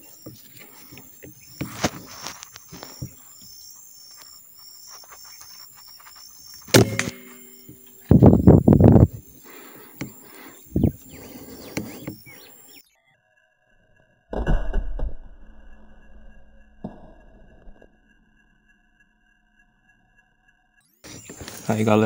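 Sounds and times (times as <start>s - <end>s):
rifle shot: 6.7s - 7.4s.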